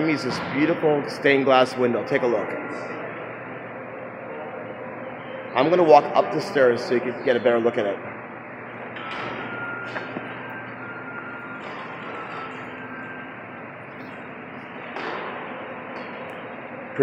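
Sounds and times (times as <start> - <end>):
large hall background noise: 0.0 - 17.0.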